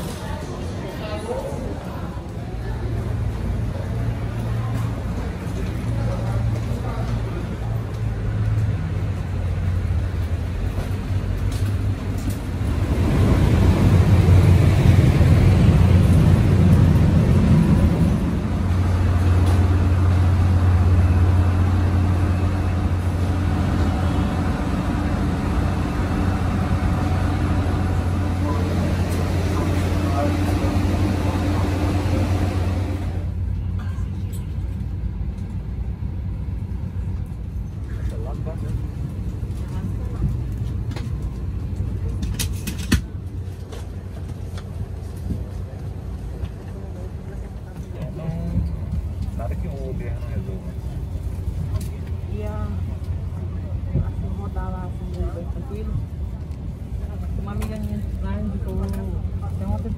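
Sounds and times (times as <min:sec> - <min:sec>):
machinery hum: 0:02.4 - 0:42.2.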